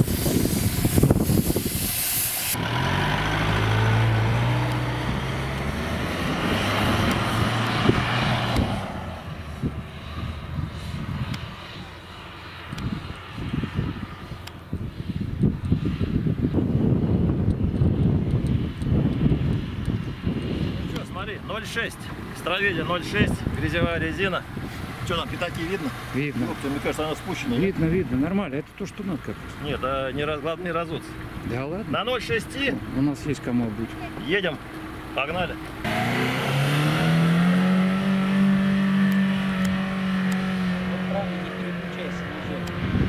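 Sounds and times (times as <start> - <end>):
wind buffeting microphone: 0.0 - 26.6, 37.6 - 43.0
car engine revving: 2.5 - 10.3, 32.3 - 43.0.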